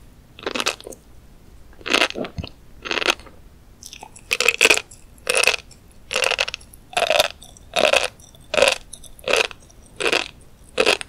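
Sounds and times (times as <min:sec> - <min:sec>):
chewing crunchy fish eggs: 0:00.4 - 0:01.0, 0:01.8 - 0:11.0.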